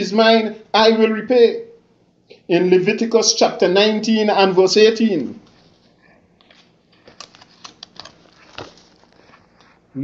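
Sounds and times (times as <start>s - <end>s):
paper pages rustling: 5.4s - 9.9s.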